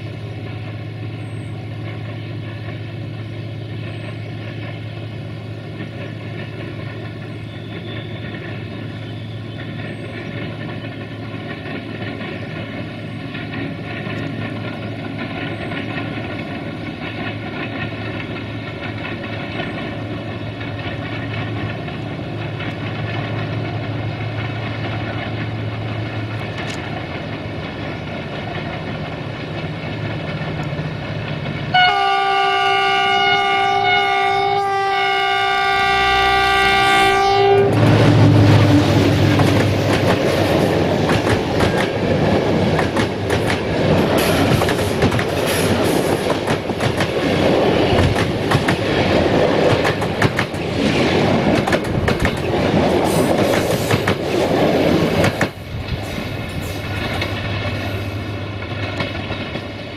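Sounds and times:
train wheels clattering over rail joints: 0:00.0 - 0:34.0, 0:35.9 - 0:59.9
locomotive engine hum: 0:00.0 - 0:59.9
train horn: 0:31.7 - 0:39.2.

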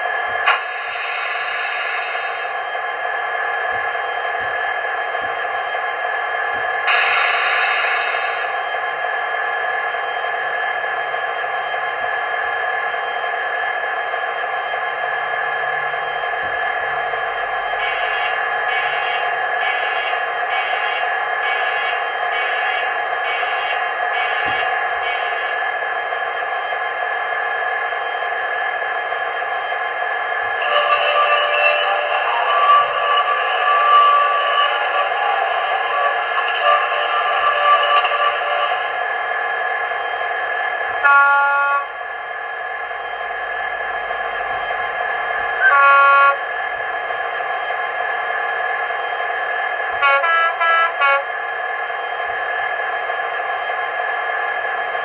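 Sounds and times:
steady hum: 0:00.0 - 0:55.0
train flange squeal: 0:00.5 - 0:06.1, 0:06.7 - 0:10.6, 0:11.4 - 0:25.8, 0:29.3 - 0:42.0
short pitched train toots: 0:17.8 - 0:25.5, 0:30.6 - 0:38.9, 0:41.0 - 0:42.0, 0:45.6 - 0:46.5, 0:50.0 - 0:51.3.

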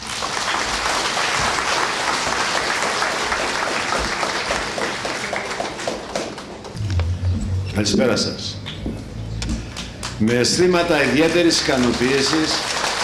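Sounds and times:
audience applauding: 0:00.0 - 0:06.8, 0:09.7 - 0:13.0.

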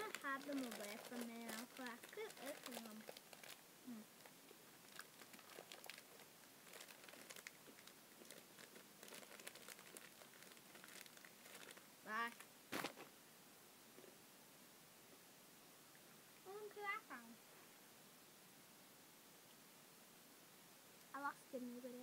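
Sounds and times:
plastic snack bag crinkling: 0:00.0 - 0:03.6, 0:04.2 - 0:13.1.

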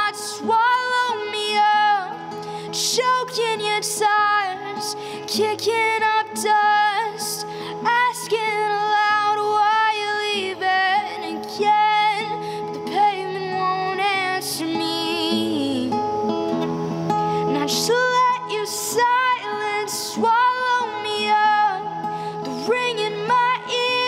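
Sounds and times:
strummed acoustic guitar: 0:00.0 - 0:24.0.

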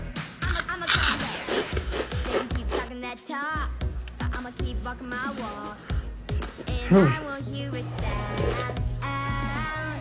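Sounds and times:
pop music with steady beat: 0:00.0 - 0:10.0
loud crunch of snack bitten: 0:00.5 - 0:02.8.

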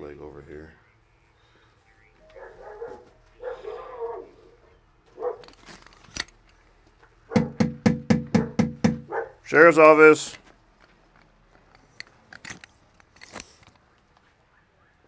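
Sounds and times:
dog barking rapidly: 0:05.2 - 0:05.5, 0:07.3 - 0:07.7, 0:08.3 - 0:09.4
knocking on door: 0:07.3 - 0:09.1.

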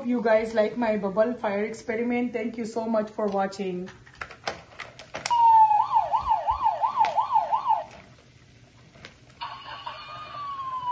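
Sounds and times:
toy electronic siren wailing: 0:05.3 - 0:07.9, 0:09.4 - 0:10.9.

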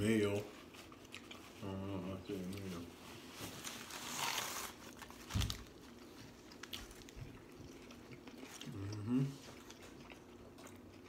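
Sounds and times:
eating and chewing clicks: 0:00.6 - 0:01.6, 0:05.9 - 0:11.0
paper wrapper crinkling: 0:03.2 - 0:07.2.

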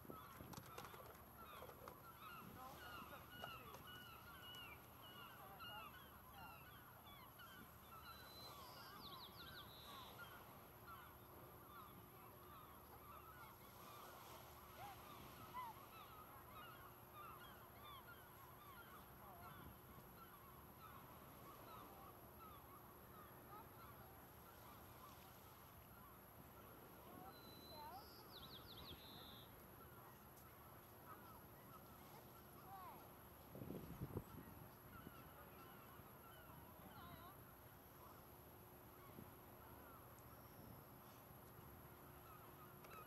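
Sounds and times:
flock of birds calling: 0:00.1 - 0:25.3.

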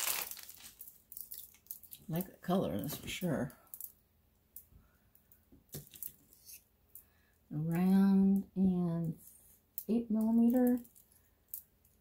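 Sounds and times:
beads knocking together: 0:00.0 - 0:12.0.

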